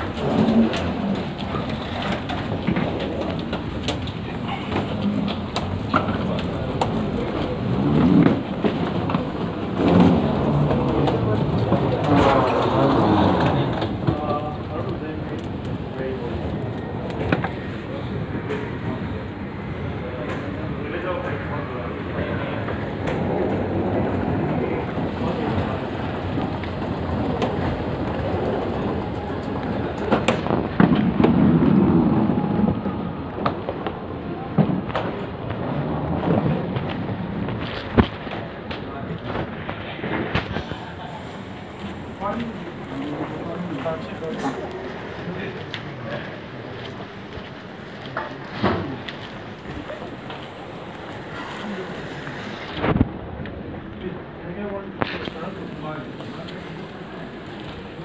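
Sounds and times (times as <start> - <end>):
escalator rumbling: 0.0 - 58.0
indistinct voices: 0.0 - 58.0
indoor crowd and machine hiss: 0.0 - 58.0.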